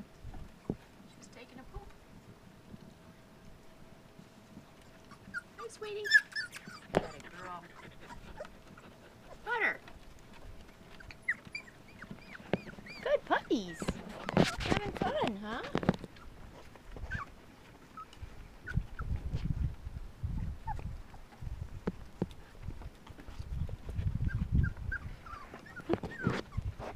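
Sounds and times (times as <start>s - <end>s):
puppies squeaking: 4.8s - 9.7s, 10.8s - 19.2s, 24.2s - 26.9s.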